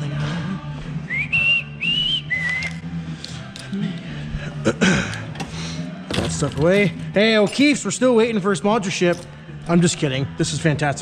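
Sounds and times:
faint background music: 0:00.0 - 0:11.0
person whistling: 0:01.0 - 0:02.9.

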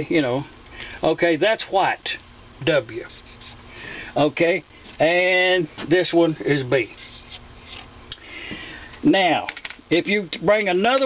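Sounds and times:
scratching and rubbing on metal: 0:06.8 - 0:07.9.

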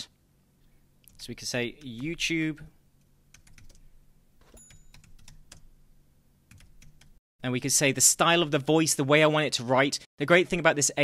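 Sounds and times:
typing on computer keyboard: 0:03.4 - 0:03.8, 0:04.9 - 0:05.6.

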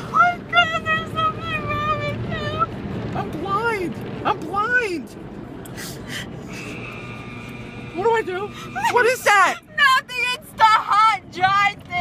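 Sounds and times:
car wash dryer blowers whining: 0:00.0 - 0:12.0
low hum: 0:00.0 - 0:12.0.

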